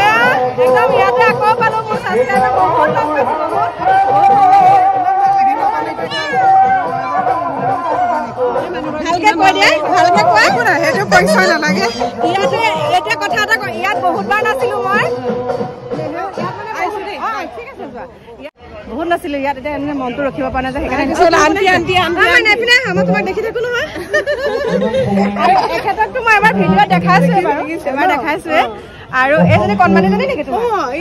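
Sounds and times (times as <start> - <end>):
women chatting: 0.0 - 3.3, 8.6 - 15.1, 16.1 - 31.0.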